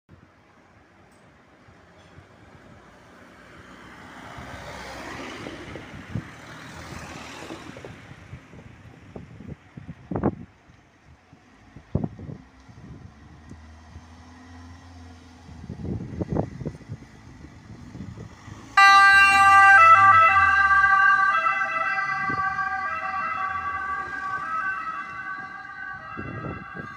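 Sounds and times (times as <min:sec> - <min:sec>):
vehicle noise: 0:01.2 - 0:26.9
ambulance electronic siren: 0:18.8 - 0:26.9.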